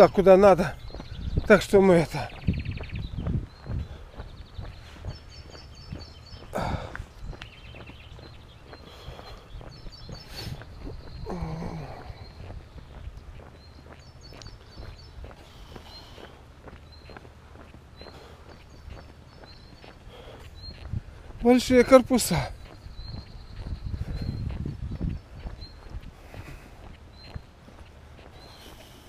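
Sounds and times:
high bird chirps: 0.0 - 27.5
footsteps on paved road: 0.0 - 29.0.

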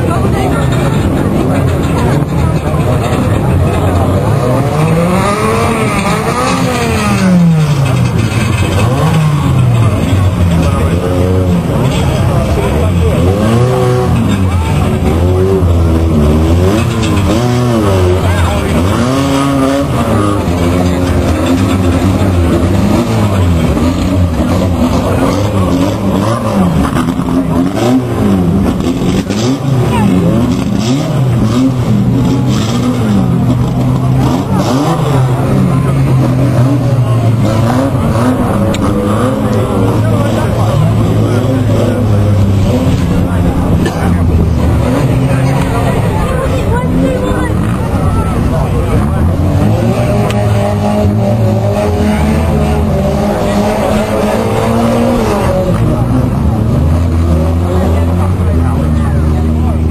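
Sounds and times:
racing car engines revving: 0.0 - 59.9.

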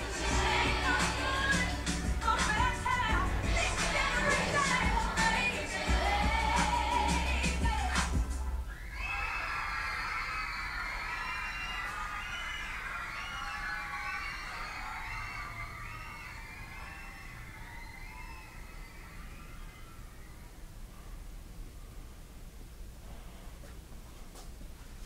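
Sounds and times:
crowd voices calling out: 0.0 - 8.2
music track: 0.0 - 8.6.

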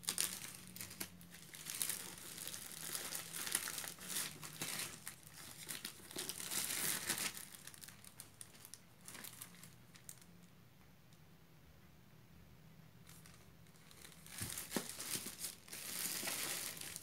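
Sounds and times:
plastic wrap crinkling and tearing: 0.0 - 10.3, 13.1 - 17.0.

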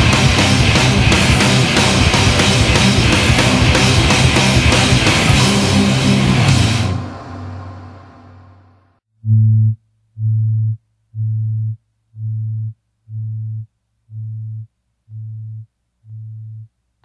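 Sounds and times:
distorted rock music: 0.0 - 8.6
low tone beeping: 9.2 - 16.7.

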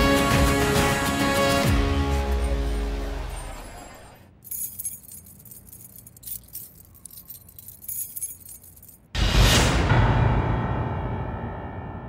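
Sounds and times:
soft metallic jingling: 4.4 - 9.1.

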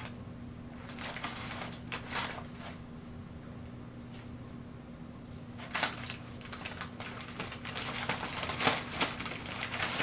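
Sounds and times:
packing paper crinkling: 0.8 - 2.7, 5.6 - 10.0.

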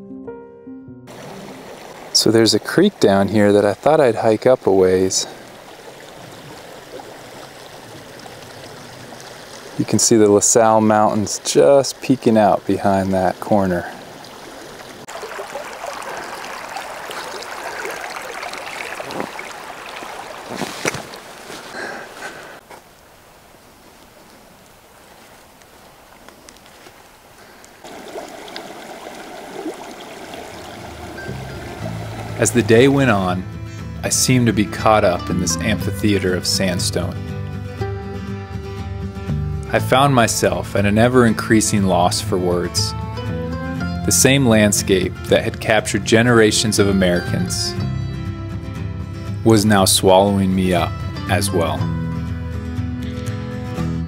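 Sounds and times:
background music with low notes: 0.0 - 2.9, 31.0 - 54.0
creek flowing: 1.1 - 38.3, 39.7 - 47.8.

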